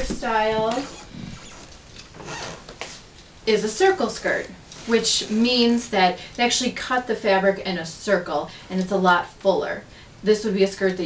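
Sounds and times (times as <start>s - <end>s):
clothes hangers scraping on rail: 0.0s - 3.1s, 4.6s - 5.9s.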